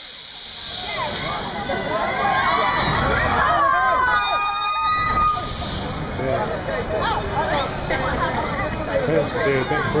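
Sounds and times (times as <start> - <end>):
amusement ride whining: 0.6 - 10.0.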